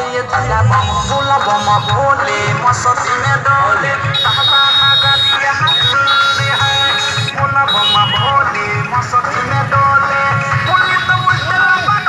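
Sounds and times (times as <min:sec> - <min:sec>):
loud music with bass beat: 0:00.0 - 0:12.0.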